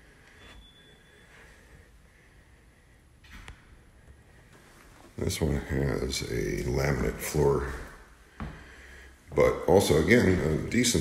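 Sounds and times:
faint soft rustles: 4.0s - 5.8s.

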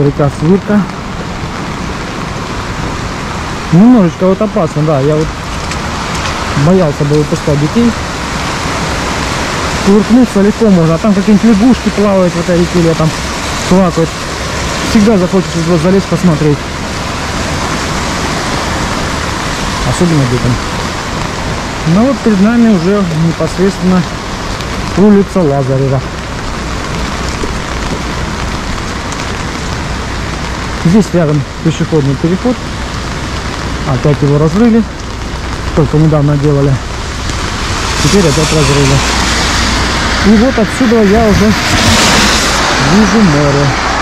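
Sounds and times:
rain hissing on wet pavement: 0.0s - 44.0s
river rushing: 0.0s - 44.0s.

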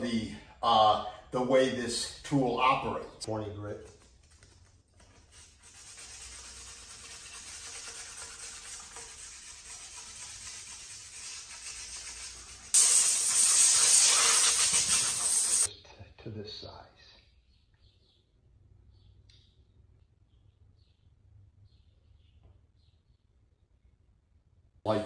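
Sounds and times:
sandpaper rasping on metal: 5.3s - 15.7s
loud hiss: 12.0s - 15.7s.

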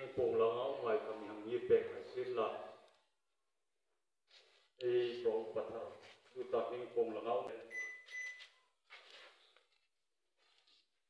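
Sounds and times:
man speaking through microphone: 0.0s - 2.8s, 4.8s - 7.7s
high electronic beep: 7.7s - 8.4s.

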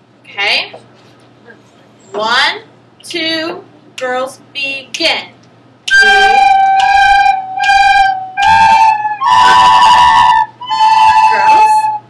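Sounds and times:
recorders playing in unison: 5.9s - 12.0s.

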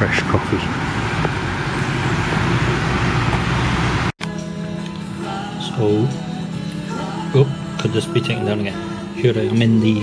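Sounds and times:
road traffic noise: 0.0s - 5.3s
background music with held notes: 4.2s - 10.0s.

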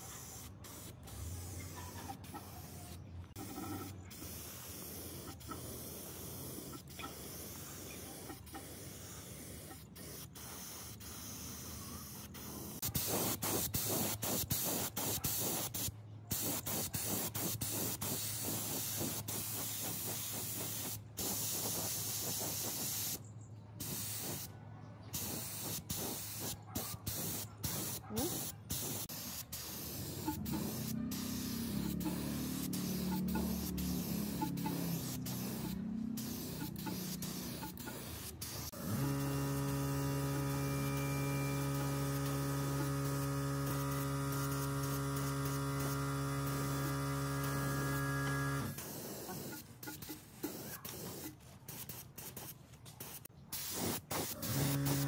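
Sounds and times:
spray gun hissing: 0.0s - 23.2s, 23.8s - 24.5s, 25.1s - 55.0s
loud electric hum: 38.8s - 48.8s.

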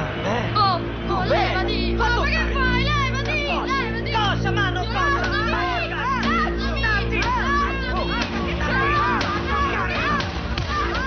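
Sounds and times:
music with low chord: 0.0s - 11.0s.

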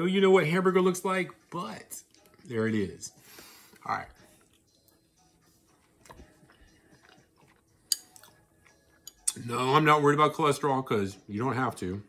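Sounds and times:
person chewing wetly: 5.7s - 9.4s.

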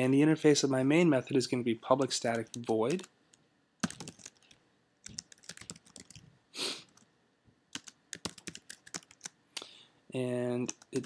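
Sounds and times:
keyboard typing clicks: 3.8s - 6.2s, 7.7s - 9.7s.

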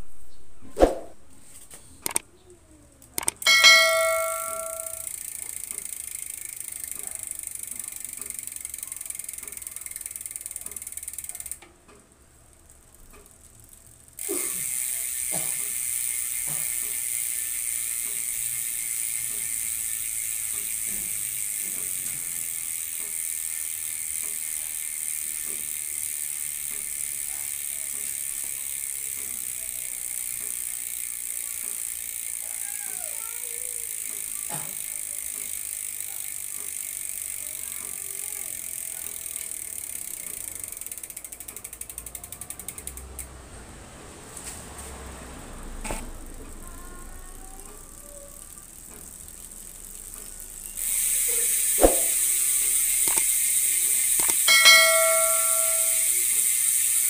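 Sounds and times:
bicycle freehub clicking: 1.4s - 43.4s, 44.4s - 57.0s.

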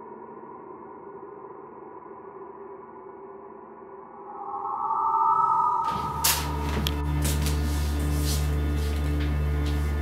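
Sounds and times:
ambient electronic tones: 0.0s - 7.4s
low steady drone: 0.0s - 10.0s.

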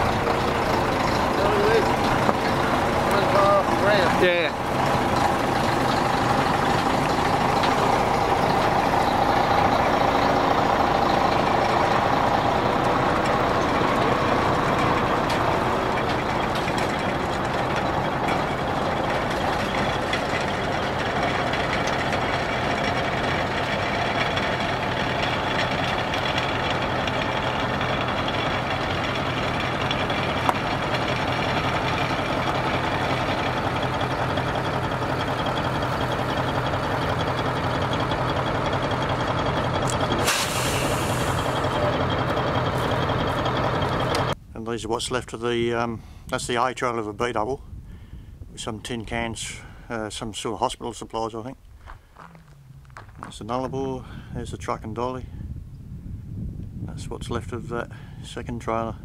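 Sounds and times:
diesel truck engines running: 0.0s - 44.6s, 45.5s - 59.0s.

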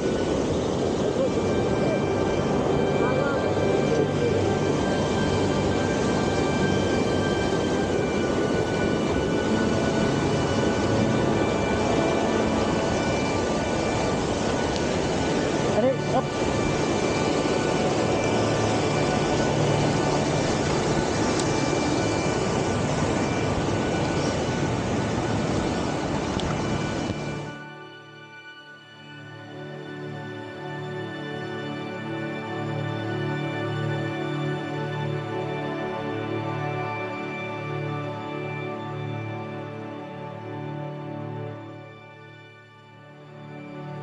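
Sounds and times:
whitewater rushing: 0.0s - 28.1s.

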